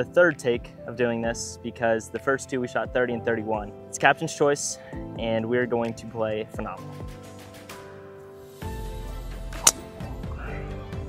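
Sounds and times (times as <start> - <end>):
background music: 0.0 - 11.0
golf club striking ball: 9.6 - 10.0.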